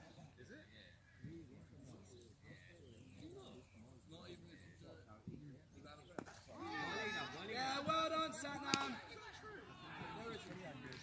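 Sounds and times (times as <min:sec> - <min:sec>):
players shouting: 0:06.5 - 0:11.0
cricket bat hitting ball: 0:08.6 - 0:09.0.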